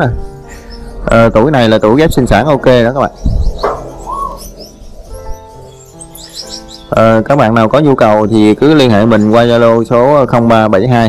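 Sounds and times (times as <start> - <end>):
faint instrumental music: 0.0 - 11.0
finches chirping: 0.0 - 11.0.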